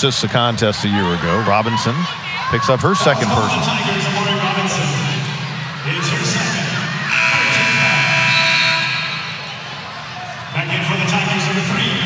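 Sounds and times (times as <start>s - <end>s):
crowd murmur: 0.0s - 12.0s
arena horn buzzing: 7.1s - 9.4s.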